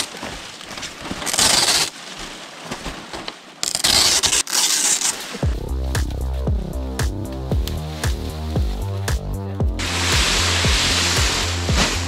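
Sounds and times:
palm fronds rustling and crackling: 0:00.0 - 0:12.0
music with heavy bass beat: 0:05.4 - 0:12.0.

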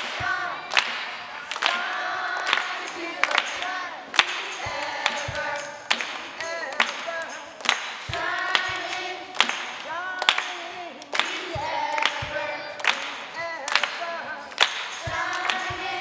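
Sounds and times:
children's choir singing: 0:00.0 - 0:16.0
hand claps: 0:00.0 - 0:16.0.

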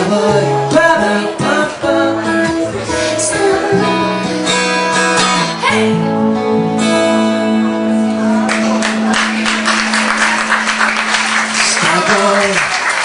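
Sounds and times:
acoustic guitar strumming: 0:00.0 - 0:11.8.

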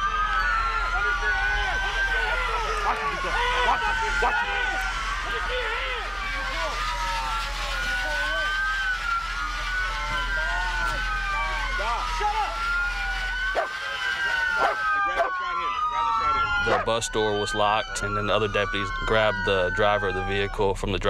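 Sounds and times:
officers shouting: 0:00.0 - 0:20.7
police sirens wailing: 0:00.0 - 0:21.0.

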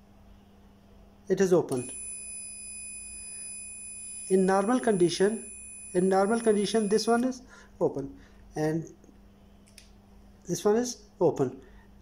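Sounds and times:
multimeter continuity beep: 0:01.7 - 0:07.4.

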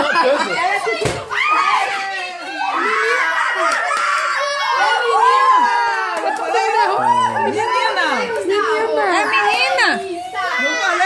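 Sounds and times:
children calling out: 0:00.0 - 0:11.0.

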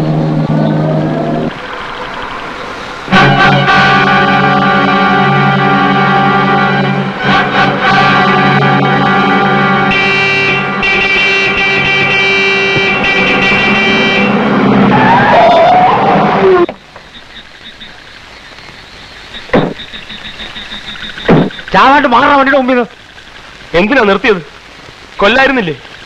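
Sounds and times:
dramatic orchestral chords: 0:00.0 - 0:15.2
quiet hiss: 0:16.4 - 0:26.0
short sharp hits: 0:21.2 - 0:21.7.

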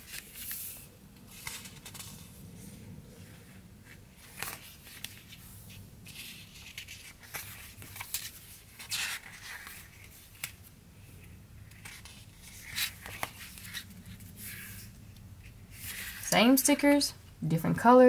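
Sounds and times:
sticker sheets rustling: 0:03.2 - 0:10.6, 0:11.2 - 0:16.3.

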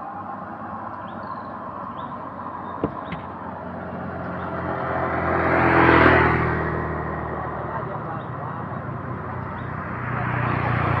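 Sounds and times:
traffic hum: 0:00.0 - 0:11.0
motorcycle passing by: 0:00.5 - 0:11.0.

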